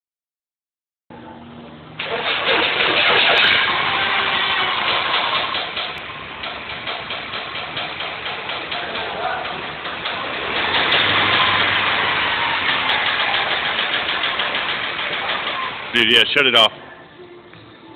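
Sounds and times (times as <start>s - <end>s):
car engine running: 2.0s - 16.5s.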